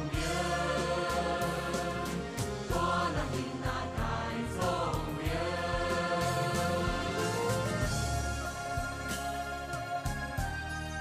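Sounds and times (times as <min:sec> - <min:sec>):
choir singing held notes: 0:00.0 - 0:10.2
instrumental accompaniment: 0:00.0 - 0:11.0.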